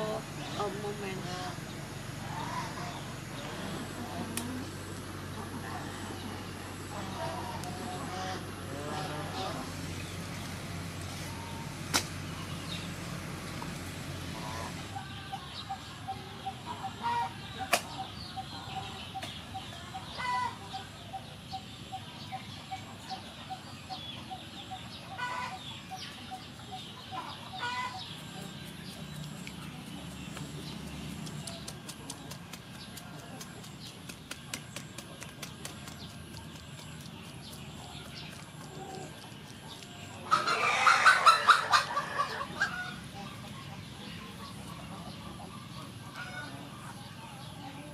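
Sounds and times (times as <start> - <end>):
birds calling: 0.0 - 47.9
rapidly pulsing bird call: 14.2 - 47.9.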